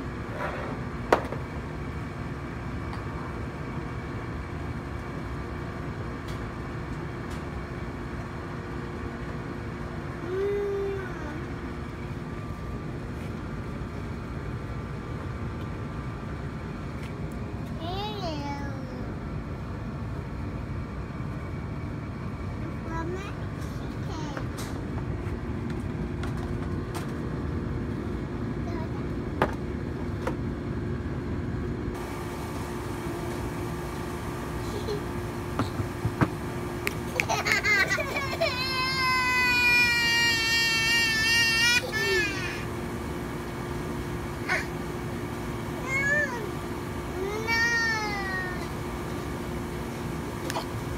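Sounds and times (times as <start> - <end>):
low outdoor rumble: 0.0 - 50.9
small child vocalizing: 10.2 - 11.5
toddler crying: 37.9 - 42.6.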